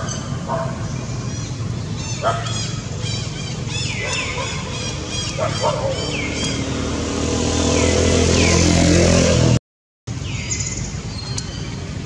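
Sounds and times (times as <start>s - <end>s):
vehicle engine running: 0.0s - 9.5s, 10.1s - 12.0s.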